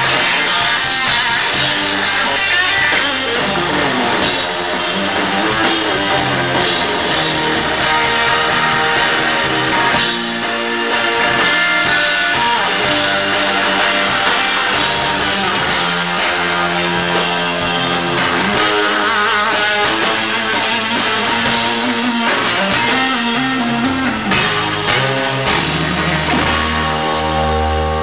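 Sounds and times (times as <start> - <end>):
bass and drums: 0.0 - 28.0
electric guitar lead: 0.0 - 28.0.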